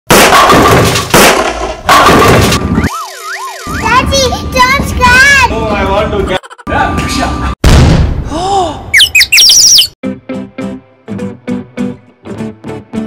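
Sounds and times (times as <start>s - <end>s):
wobbling synthetic siren tone: 2.6s - 5.0s, 5.6s - 7.6s, 9.0s - 9.9s.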